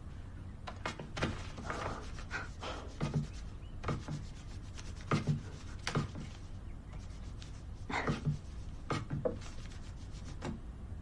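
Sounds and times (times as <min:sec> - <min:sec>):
pencil scratching on paper: 0:01.4 - 0:10.5.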